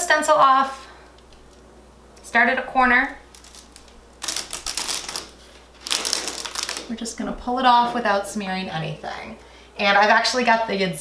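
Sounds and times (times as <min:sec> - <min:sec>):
stencil peeling off wall crackling: 0:02.9 - 0:07.2.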